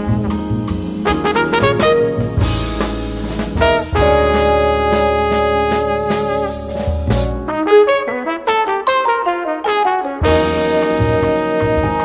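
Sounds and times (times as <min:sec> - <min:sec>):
jazz band playing: 0:00.0 - 0:12.0
trumpet run of notes: 0:01.0 - 0:12.0.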